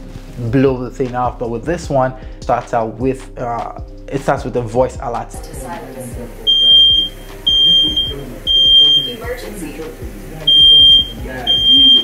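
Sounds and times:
smoke alarm beeping: 6.5s - 9.5s, 10.5s - 12.0s.

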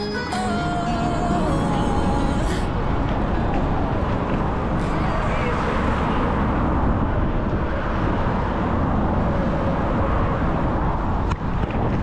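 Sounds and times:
cars passing: 0.0s - 12.0s
road traffic: 0.0s - 12.0s
wind on microphone: 1.1s - 12.0s.

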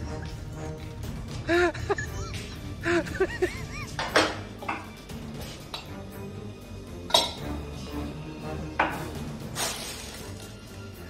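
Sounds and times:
background music: 0.0s - 11.0s
kitchenware clinking: 3.9s - 5.0s, 7.1s - 7.5s.

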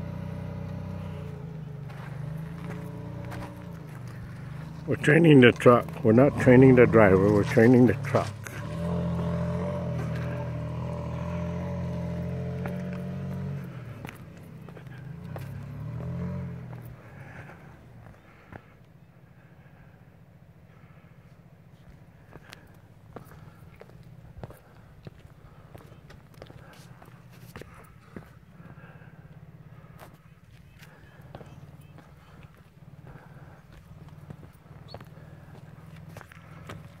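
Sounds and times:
truck engine running low: 0.0s - 37.0s.

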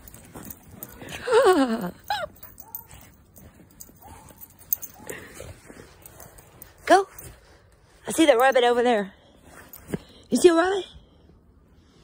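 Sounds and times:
woman laughing: 1.1s - 2.5s.

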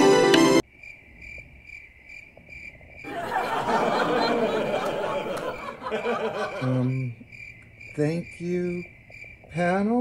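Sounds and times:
music: 0.0s - 0.6s
crickets chirping: 0.6s - 10.0s.

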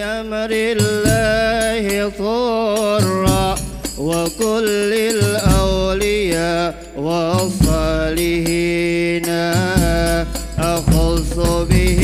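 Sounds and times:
voices singing ornamented line: 0.0s - 12.0s
deep drum strokes: 9.6s - 12.0s.

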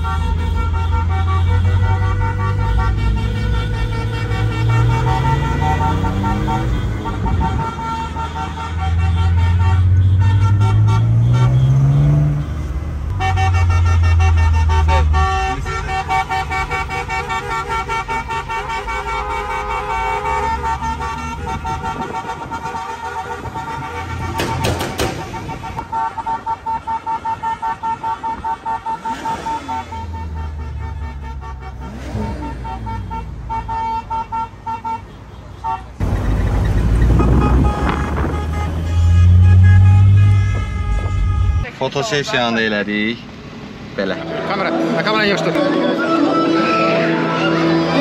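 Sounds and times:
car engine revving: 0.0s - 25.8s, 28.9s - 33.6s, 36.0s - 41.5s
car horns honking: 0.0s - 43.0s.

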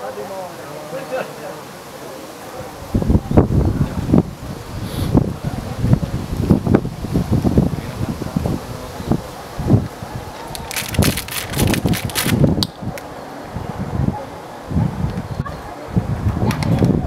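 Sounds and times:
crackling rustle: 0.9s - 13.5s
wind buffeting microphone: 2.5s - 17.0s.

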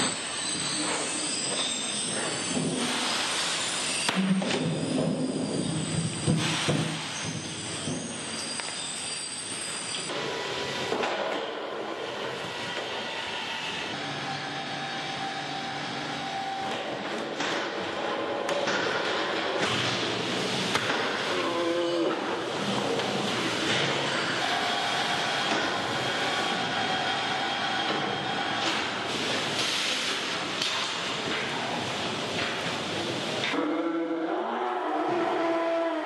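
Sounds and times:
high metallic squealing: 0.0s - 10.1s.

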